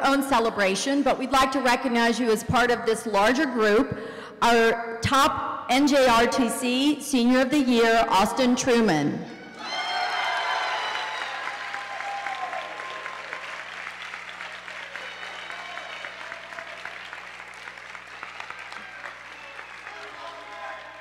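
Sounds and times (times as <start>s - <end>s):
large audience applauding: 9.5s - 21.0s
voices calling out in crowd: 18.5s - 21.0s.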